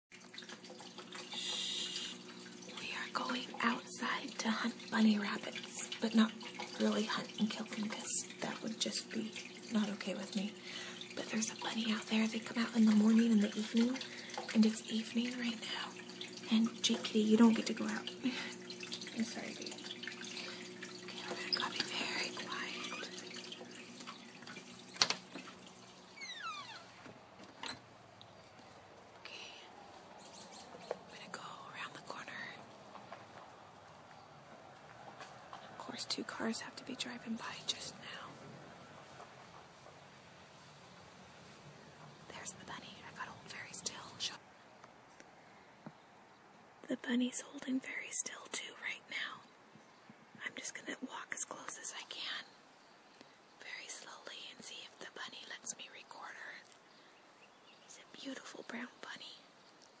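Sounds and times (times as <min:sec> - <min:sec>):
low steady hum: 0:00.1 - 0:44.7
hushing hiss: 0:01.2 - 0:06.2
woman whispering: 0:02.8 - 0:18.5, 0:21.1 - 0:23.2, 0:29.2 - 0:30.0, 0:31.1 - 0:32.7, 0:35.7 - 0:38.4, 0:42.3 - 0:44.4, 0:46.8 - 0:49.5, 0:50.4 - 0:52.6, 0:53.6 - 0:56.8, 0:57.9 - 0:59.5
door hinge squeak: 0:26.1 - 0:27.9.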